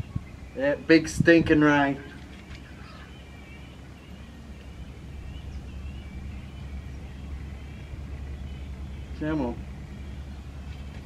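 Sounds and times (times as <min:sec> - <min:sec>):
faint wavering bird calls: 0:00.0 - 0:11.0
low outdoor rumble: 0:00.0 - 0:11.0.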